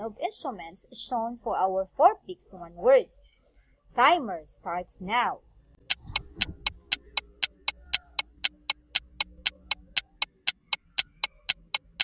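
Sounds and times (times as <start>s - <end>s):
countdown timer ticking: 5.8s - 12.0s.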